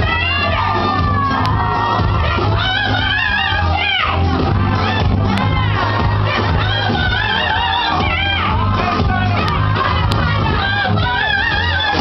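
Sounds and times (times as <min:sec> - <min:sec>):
crowd shouting and singing: 0:00.0 - 0:12.0
loud music with steady bass: 0:00.0 - 0:12.0.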